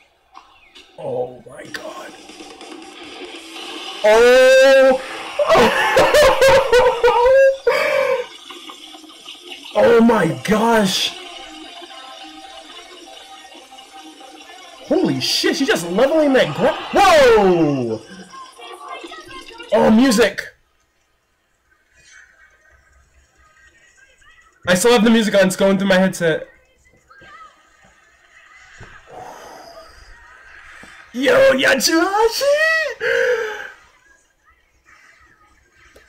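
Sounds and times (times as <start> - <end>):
faint soundtrack leaking from headphones: 0.0 - 36.0.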